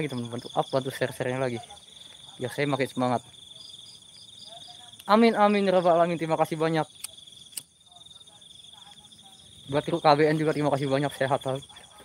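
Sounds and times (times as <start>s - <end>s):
crickets trilling: 0.0s - 12.0s
sharp clicks: 7.0s - 7.7s.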